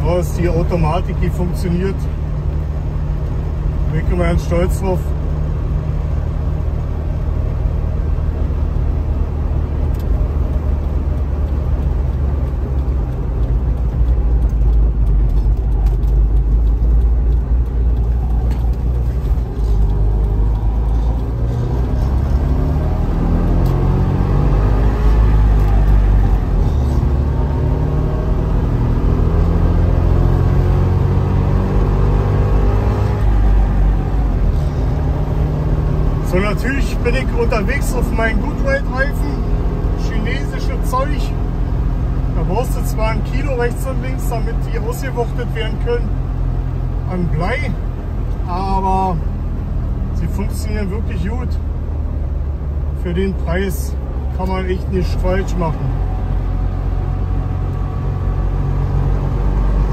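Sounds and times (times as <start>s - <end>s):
road noise: 0.0s - 59.9s.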